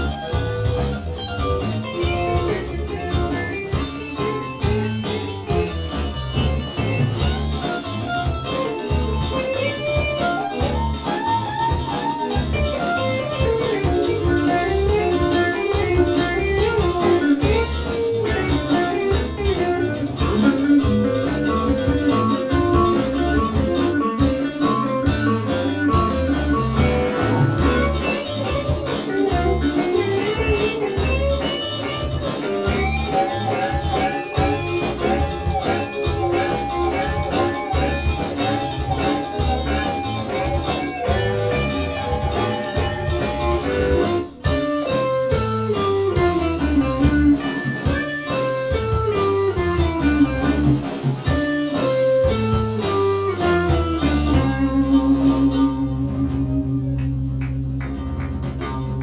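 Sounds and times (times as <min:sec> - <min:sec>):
drums: 0:00.0 - 0:59.0
electric guitars: 0:00.0 - 0:59.0
lead guitar melodic figure: 0:00.0 - 0:59.0.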